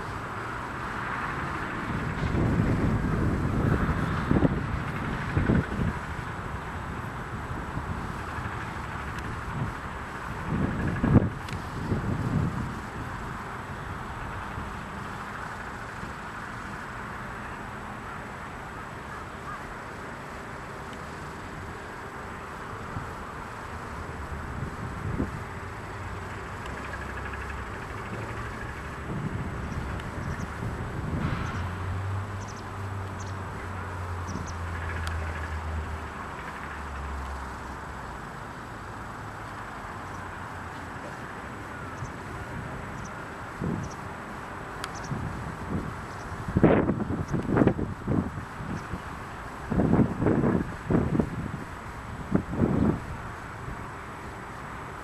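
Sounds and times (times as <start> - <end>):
low engine hum: 0.0 - 55.0
outdoor background hiss: 0.0 - 55.0
wind gusting on microphone: 0.0 - 55.0.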